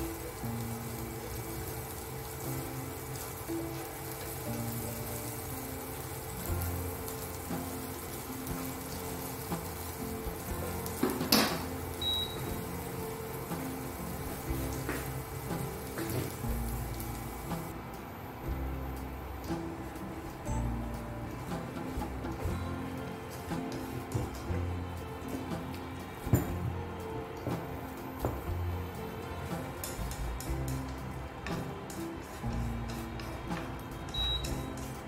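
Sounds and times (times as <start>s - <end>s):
onions sizzling in frying pan: 0.0s - 17.8s, 18.4s - 35.0s
background music with low beat: 0.0s - 35.0s.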